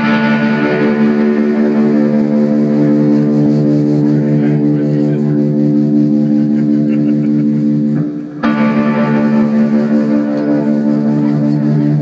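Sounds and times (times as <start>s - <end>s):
electric guitar sustained chord: 0.0s - 12.0s.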